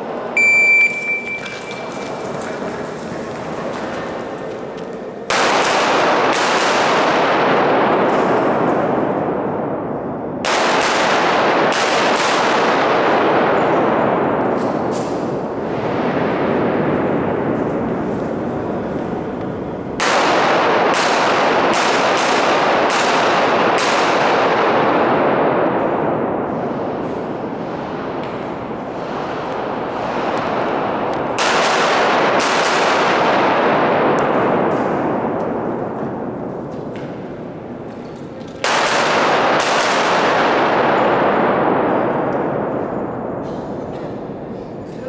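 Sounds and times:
handgun shots echoing: 5.3 - 8.8, 10.4 - 15.4, 20.0 - 26.3, 28.1 - 37.1, 37.8 - 42.5.

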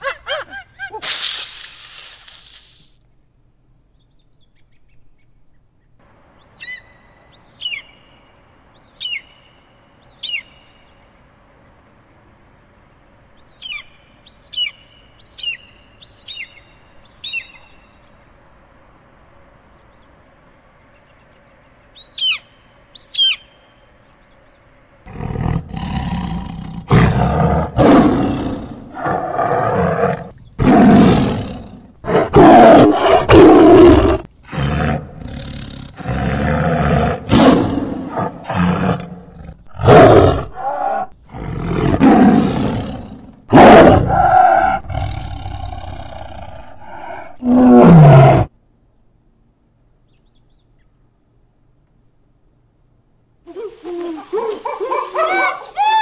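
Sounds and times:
shrill falling bird calls: 22.0 - 23.9, 53.4 - 56.0
tiger roaring and growling: 25.1 - 48.5.

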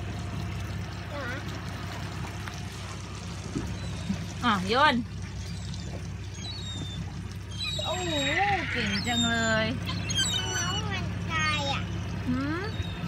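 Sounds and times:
outboard motor idling: 0.0 - 13.0
water sloshing against hull: 0.0 - 13.0.

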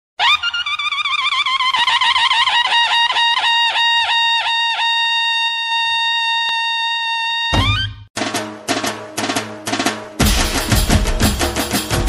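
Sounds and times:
high-pitched wind instrument trilling: 0.2 - 8.1.

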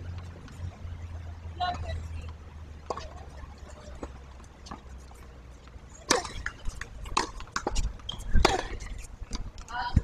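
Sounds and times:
tennis balls striking court and racquets: 0.0 - 10.0.

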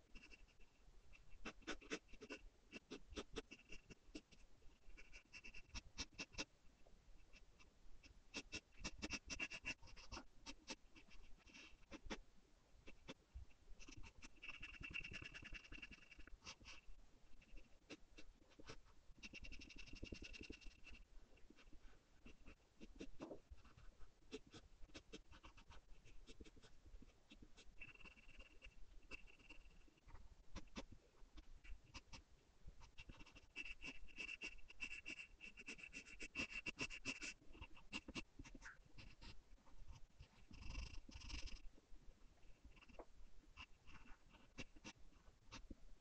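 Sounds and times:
pencil scratching on paper: 0.0 - 6.5, 7.2 - 12.2, 12.8 - 32.2, 32.8 - 41.7, 42.4 - 45.8.

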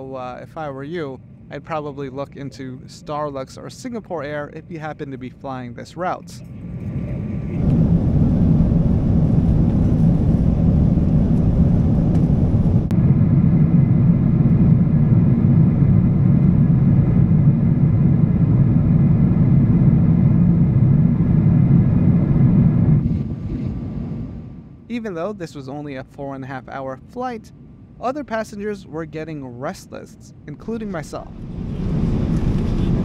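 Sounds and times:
airplane cabin engine rumble: 0.0 - 33.0.

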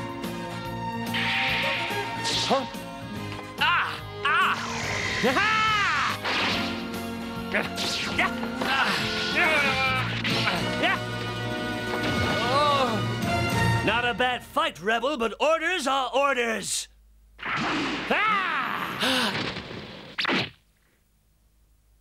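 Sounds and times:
background music: 0.0 - 14.9.

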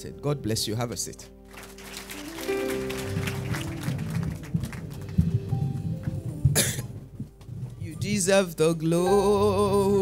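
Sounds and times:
short cough: 6.5 - 7.0.

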